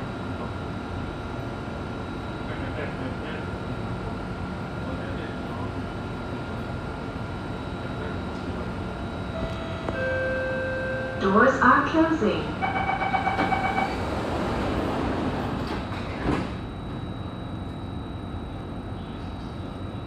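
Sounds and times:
train interior hum: 0.0s - 20.0s
electronic door warning tones: 9.3s - 14.3s.

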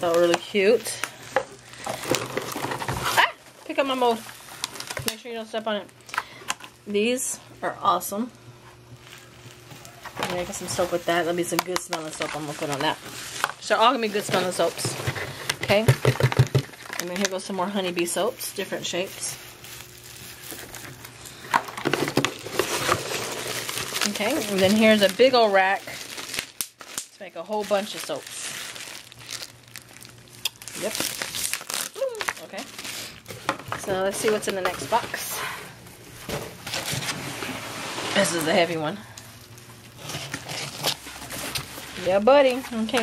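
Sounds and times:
plastic wrapping and packing peanuts rustling: 0.0s - 43.0s
cardboard flaps rustling and scraping: 36.2s - 38.6s.

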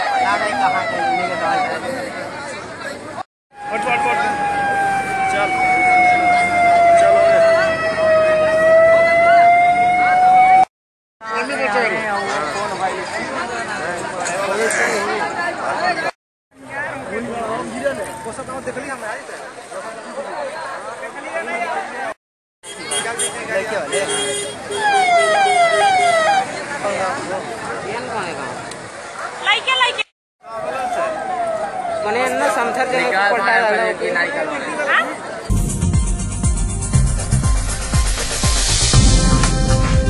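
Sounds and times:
emergency vehicle siren: 0.0s - 2.1s, 3.5s - 10.7s, 24.7s - 26.6s, 30.4s - 33.4s
crowd chatter: 0.0s - 10.4s, 11.2s - 36.4s.

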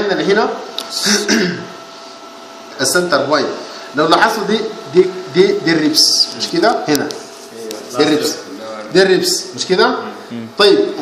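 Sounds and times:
faint room hum: 0.0s - 11.0s
man clearing his throat: 1.0s - 1.8s
man speaking: 2.8s - 11.0s.

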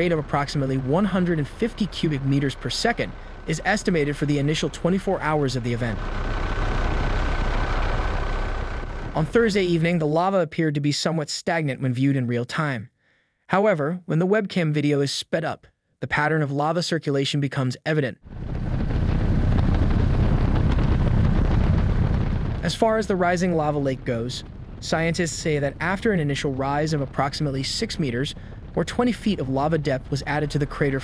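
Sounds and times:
helicopter rotor and engine drone: 0.0s - 10.0s, 18.3s - 31.0s
thin steady whine: 0.0s - 10.0s, 18.3s - 31.0s
wind hiss: 18.3s - 31.0s.

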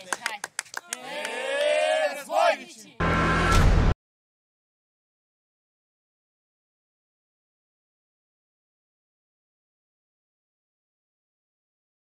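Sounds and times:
people cheering: 0.0s - 3.6s
people shouting: 0.9s - 3.6s.

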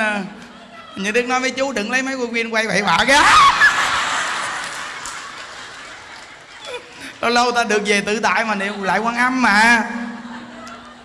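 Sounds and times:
audience laughing: 3.0s - 11.0s.

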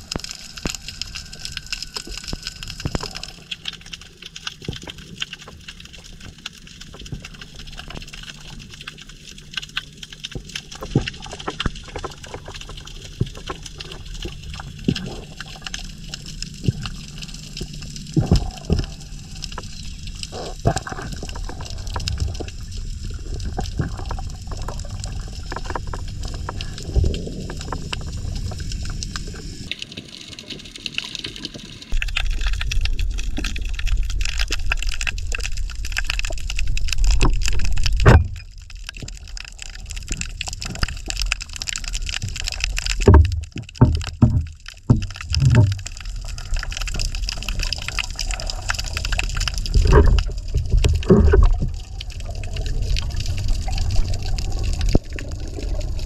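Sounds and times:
muffled underwater water rumble: 0.0s - 56.0s
underwater clicks and crackles: 0.0s - 56.0s.

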